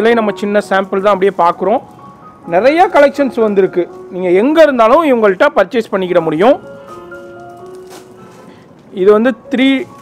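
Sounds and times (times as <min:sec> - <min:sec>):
light background music: 0:00.0 - 0:10.0
man talking: 0:02.5 - 0:06.6, 0:08.9 - 0:09.9.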